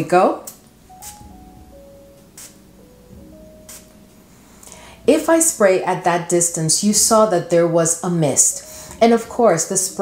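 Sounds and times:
soft background music: 0.0s - 10.0s
perfume atomizer spritzes: 0.9s - 1.4s, 2.3s - 2.6s, 3.6s - 4.0s.

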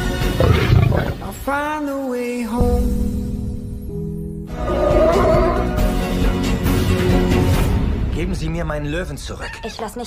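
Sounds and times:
young lion roaring: 0.4s - 1.3s
orchestral trailer music: 2.6s - 9.4s.

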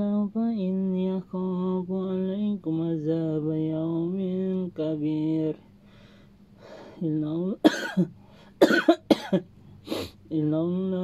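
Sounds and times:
man coughing: 7.6s - 9.5s.

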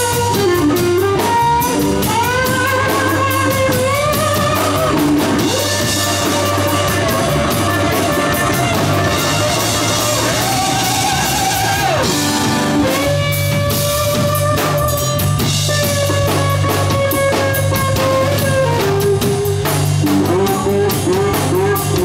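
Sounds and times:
bass guitar: 0.0s - 22.0s
drum kit beat: 0.0s - 22.0s
electric guitar lead: 0.0s - 22.0s.

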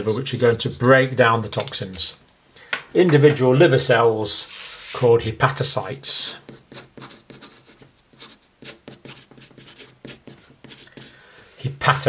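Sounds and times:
marker pen scratching on paper: 6.4s - 11.2s.

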